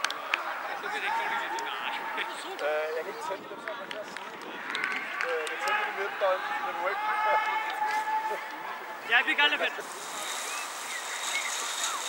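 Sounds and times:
people talking and calling: 0.0s - 12.0s.

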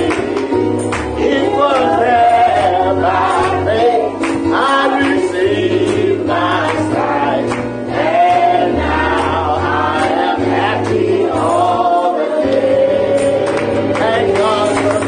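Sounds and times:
choir singing: 0.0s - 15.0s.

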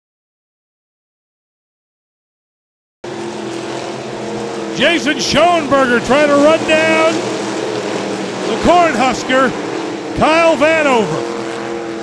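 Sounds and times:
race car engines droning: 3.0s - 12.0s.

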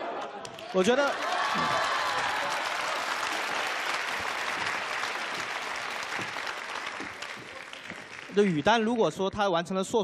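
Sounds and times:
audience applauding: 0.6s - 9.1s.

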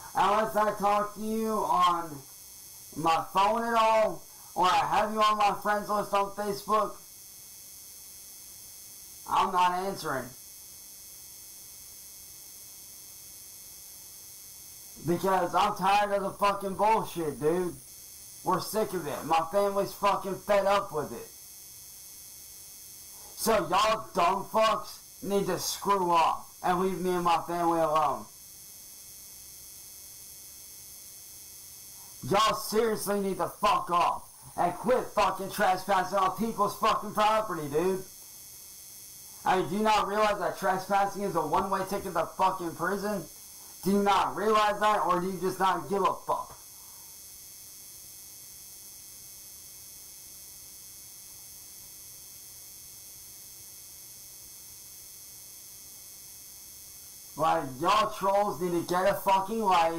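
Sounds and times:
electrical hum and hiss: 0.0s - 59.9s
thin high whine tones: 0.0s - 59.9s.

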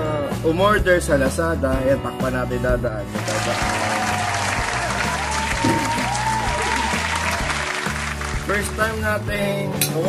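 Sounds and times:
background music: 0.0s - 10.0s
applause: 3.2s - 9.0s.

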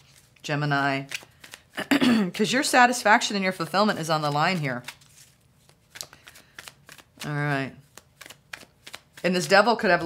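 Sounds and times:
cards being shuffled: 0.0s - 1.8s, 3.6s - 10.0s.

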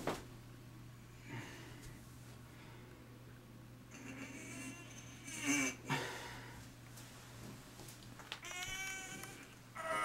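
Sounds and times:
man straining whine: 3.9s - 6.1s, 8.4s - 10.0s.

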